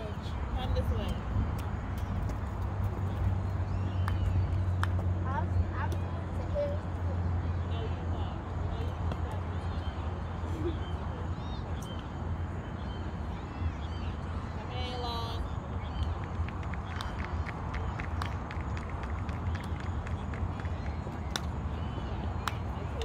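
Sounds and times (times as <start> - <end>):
distant voices: 0.0 - 23.0.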